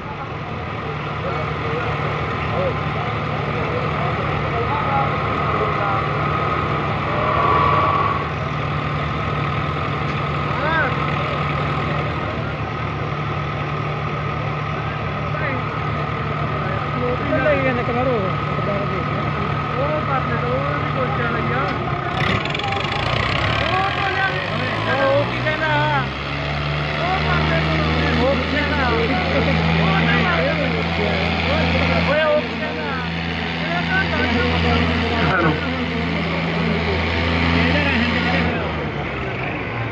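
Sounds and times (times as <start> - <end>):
crowd voices and shouts: 0.0 - 39.9
tractor diesel engines revving: 0.0 - 39.9.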